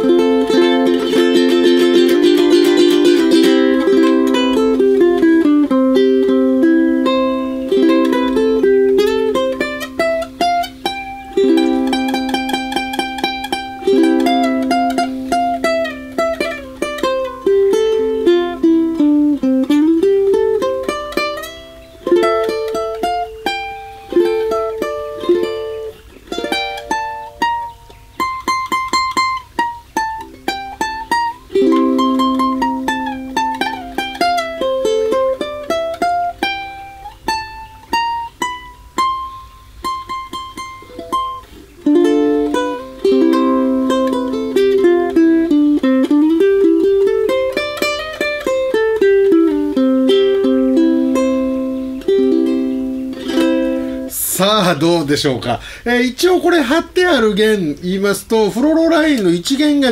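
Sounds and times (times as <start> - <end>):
ukulele fingerpicked: 0.0 - 59.9.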